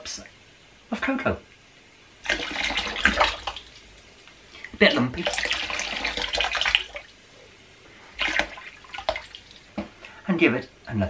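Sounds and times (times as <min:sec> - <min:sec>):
short splashes or knocks: 0:02.2 - 0:03.8, 0:08.2 - 0:09.9
liquid pouring and splashing: 0:02.2 - 0:07.2, 0:08.1 - 0:09.8.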